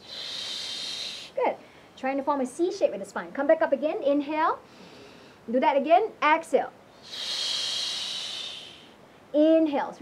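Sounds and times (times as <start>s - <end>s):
woman exhaling forcefully: 0.0s - 1.4s, 7.0s - 9.0s.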